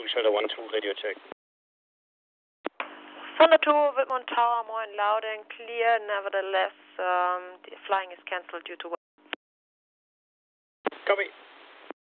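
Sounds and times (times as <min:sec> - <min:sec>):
radio clicks: 0:02.7 - 0:03.4
radio static hiss: 0:02.7 - 0:03.5, 0:10.9 - 0:12.0
faint hum: 0:02.7 - 0:09.4.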